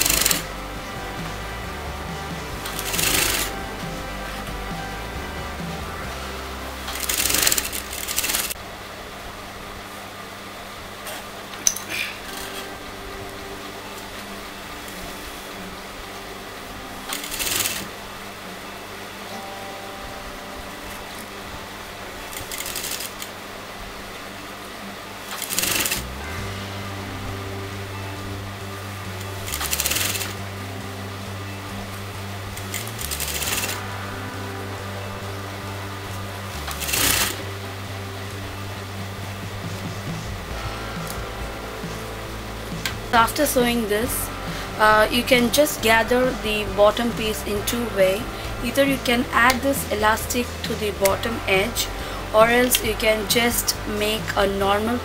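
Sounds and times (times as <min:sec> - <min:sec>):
sewing machine stitching: 0:00.0 - 0:00.5, 0:02.6 - 0:03.6, 0:06.9 - 0:08.6, 0:17.1 - 0:18.0, 0:22.3 - 0:23.3, 0:25.3 - 0:26.2, 0:29.2 - 0:30.4, 0:32.6 - 0:33.8, 0:36.6 - 0:37.4
soft background music: 0:00.0 - 0:08.6, 0:12.3 - 0:55.0.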